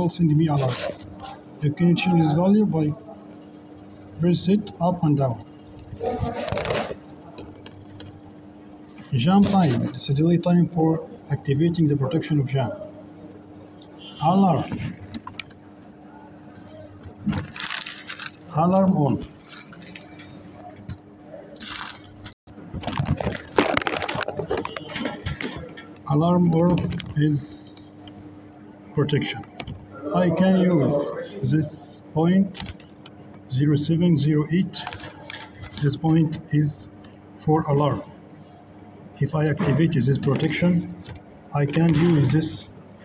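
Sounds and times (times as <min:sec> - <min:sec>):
electrical hum: 0:00.0 - 0:43.0.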